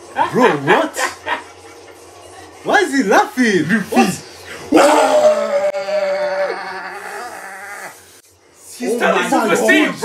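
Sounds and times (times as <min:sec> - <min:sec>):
men yelling whoa: 0:04.7 - 0:08.0.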